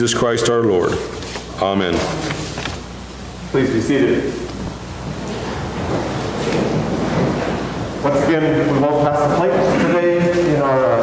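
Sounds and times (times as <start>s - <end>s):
rustle and shuffle of people sitting: 0.0s - 11.0s.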